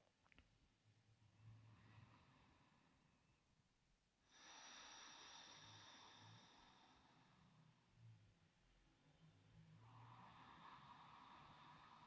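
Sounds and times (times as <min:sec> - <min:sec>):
soft hiss: 0:04.2 - 0:07.8.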